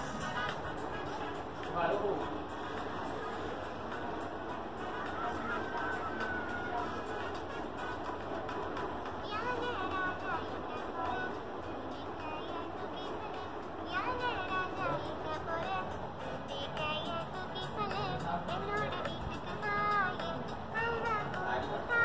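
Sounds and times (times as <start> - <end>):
music from phone speaker: 0.0 - 22.0.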